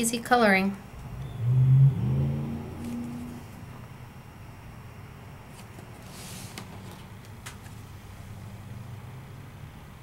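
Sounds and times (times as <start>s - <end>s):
person humming low notes: 1.0s - 3.8s.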